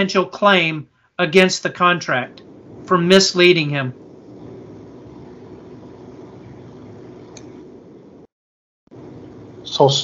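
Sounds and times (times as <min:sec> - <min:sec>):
open microphone hiss and hum: 0:00.0 - 0:08.3, 0:08.9 - 0:10.0
faint click: 0:07.3 - 0:07.6.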